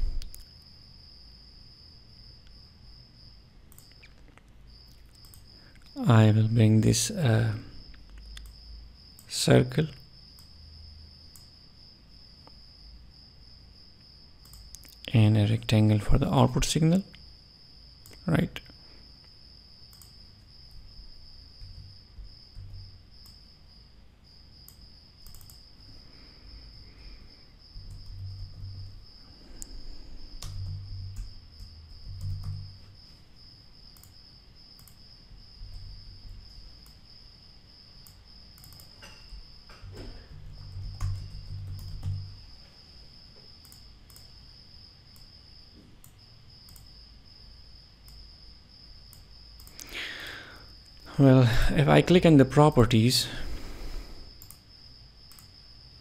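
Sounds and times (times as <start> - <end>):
faint high-pitched whine: 0.0 - 56.0
soft clicks: 0.2 - 0.6, 3.7 - 6.0, 7.9 - 8.6, 11.3 - 11.5, 14.4 - 15.1, 18.0 - 20.2, 24.6 - 25.7, 33.9 - 34.2, 34.8 - 35.0, 38.0 - 39.2, 43.6 - 44.3, 46.0 - 47.0, 49.1 - 49.9, 54.4 - 54.7, 55.3 - 55.5.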